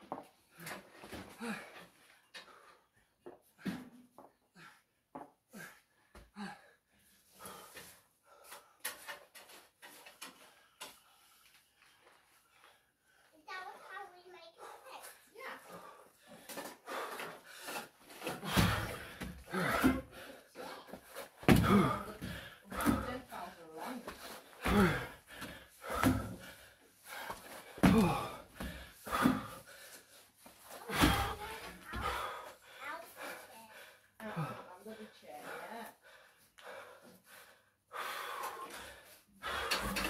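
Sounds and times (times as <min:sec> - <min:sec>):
noisy breathing: 0:10.2 - 0:40.0
feet thumping on wooden deck: 0:21.4 - 0:23.2, 0:24.1 - 0:26.4, 0:27.7 - 0:29.6.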